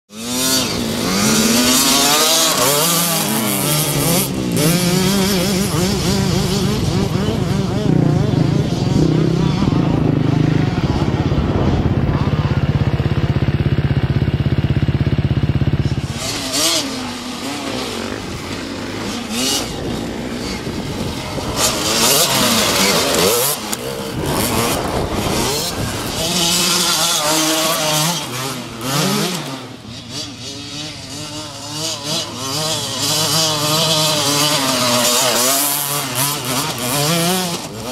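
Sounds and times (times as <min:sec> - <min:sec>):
dirt bike engine revving: 0:00.1 - 0:37.9.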